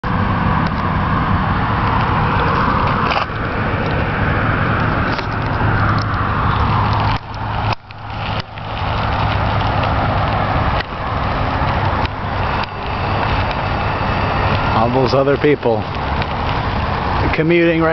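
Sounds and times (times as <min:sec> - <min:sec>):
bicycle tyre noise: 0:00.0 - 0:17.9
steady low hum: 0:00.0 - 0:17.9.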